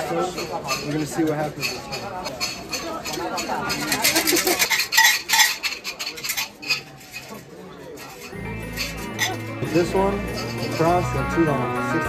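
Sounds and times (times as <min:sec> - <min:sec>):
wooden sticks rattling in metal box: 0:00.4 - 0:09.4.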